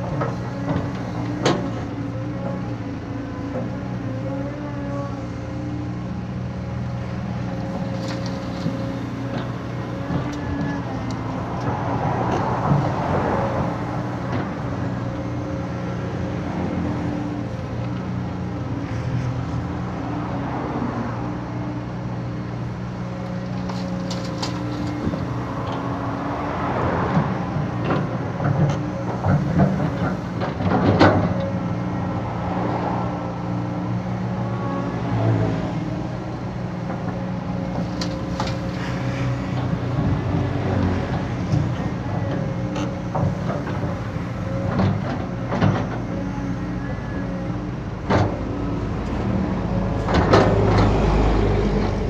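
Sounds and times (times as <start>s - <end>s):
excavator diesel engine running: 0.0s - 52.0s.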